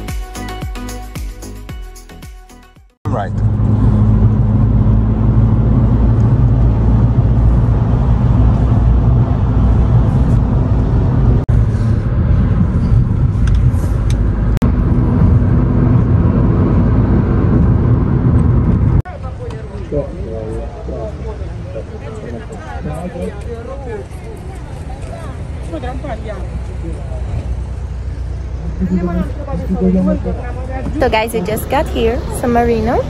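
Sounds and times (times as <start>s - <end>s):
road and wind noise: 3.1s - 33.0s.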